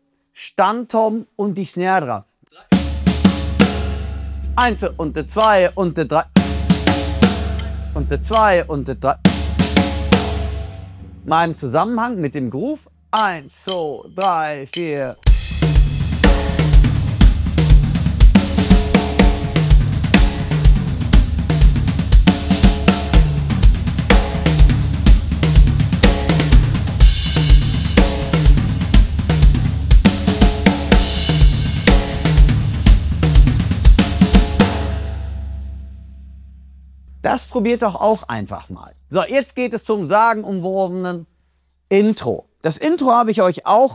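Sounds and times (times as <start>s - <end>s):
cymbals: 2.7s - 11.4s, 13.2s - 36.4s
snare and tom figures: 2.7s - 11.6s, 13.2s - 35.2s
bass drum pulse: 15.4s - 37.8s.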